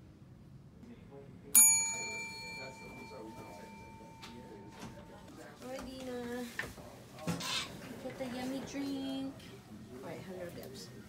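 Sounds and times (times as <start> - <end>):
desk service bell ding: 1.6 - 5.4.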